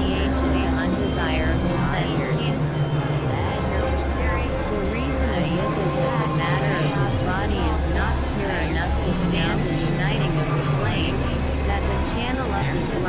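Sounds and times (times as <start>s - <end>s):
low droning bass: 0.0s - 13.0s
warbling synth pitch sweeps: 0.0s - 13.0s.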